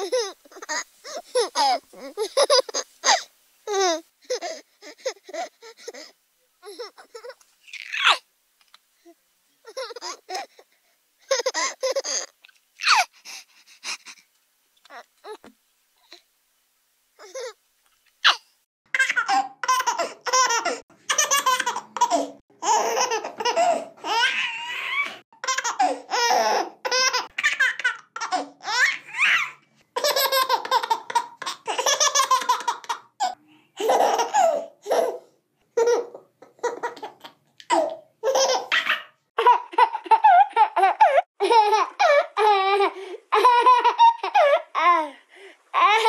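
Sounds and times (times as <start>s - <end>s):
baby laughing: 0.0s - 8.2s, 9.6s - 10.6s, 11.2s - 13.1s, 17.2s - 17.6s, 19.0s - 35.2s, 35.8s - 45.1s.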